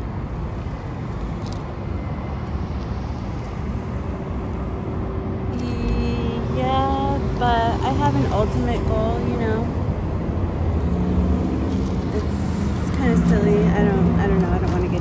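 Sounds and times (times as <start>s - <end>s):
road traffic rumble: 0.0s - 15.0s
steady hum: 0.0s - 15.0s
voice-like sounds: 5.6s - 9.4s.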